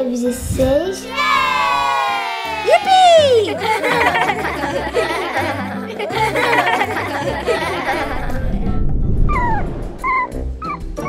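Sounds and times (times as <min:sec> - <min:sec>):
short rising whoop: 0:01.1 - 0:03.5
girl shouting joyful cry: 0:01.1 - 0:03.6.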